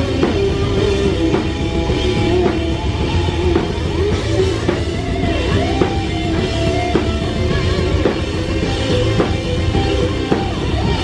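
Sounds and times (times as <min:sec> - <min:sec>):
distorted electric guitar: 0:00.0 - 0:11.0
live rock band: 0:00.0 - 0:11.0.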